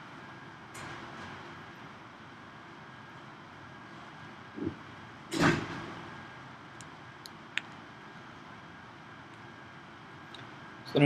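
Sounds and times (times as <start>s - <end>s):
lecture room background noise: 0.0s - 11.0s.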